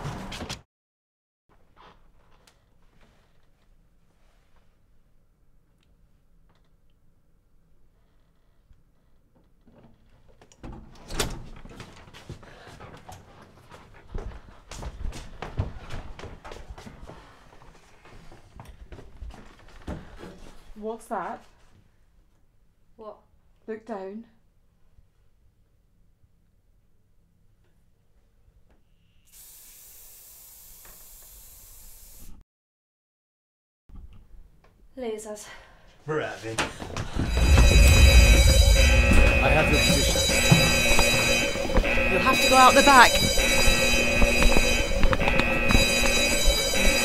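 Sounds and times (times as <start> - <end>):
aerosol can spraying: 29.4 - 32.2.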